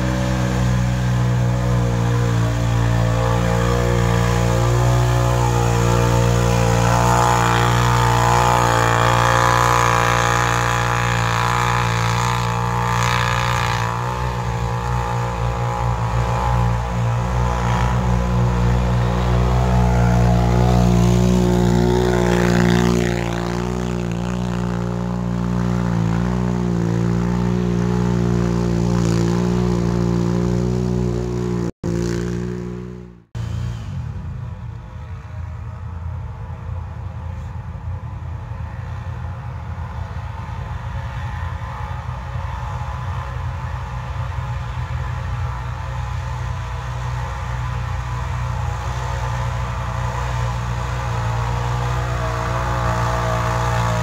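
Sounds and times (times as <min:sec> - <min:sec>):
atv engines revving high: 0:00.0 - 0:34.2, 0:38.6 - 0:54.0.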